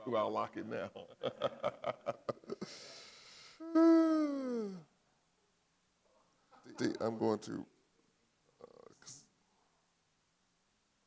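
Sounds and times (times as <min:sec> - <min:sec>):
person laughing: 0:01.2 - 0:02.8
falling aah vocalization: 0:02.4 - 0:04.9
person breathing: 0:02.5 - 0:04.9.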